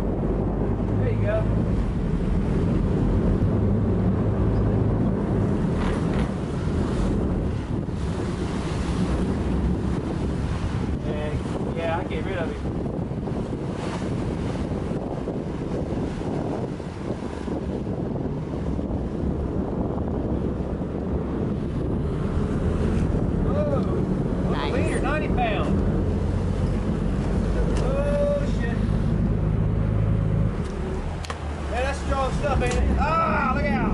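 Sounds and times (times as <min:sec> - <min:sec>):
boat engines running: 0:00.0 - 0:33.9
water rushing in wake: 0:00.0 - 0:33.9
wind on microphone: 0:00.0 - 0:33.9.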